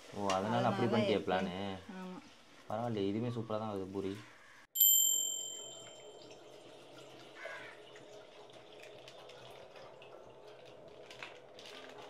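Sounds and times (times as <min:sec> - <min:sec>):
bright metallic ring: 0:04.8 - 0:06.4.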